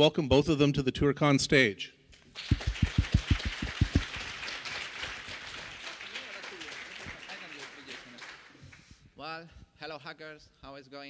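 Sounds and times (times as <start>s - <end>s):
audience applause: 2.4s - 8.6s
person clapping close: 2.4s - 8.9s.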